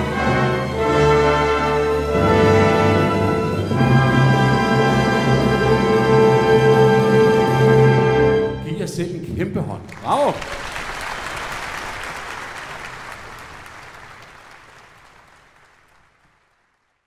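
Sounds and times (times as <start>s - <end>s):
person calling out: 8.9s - 10.5s
audience applauding: 9.8s - 17.0s.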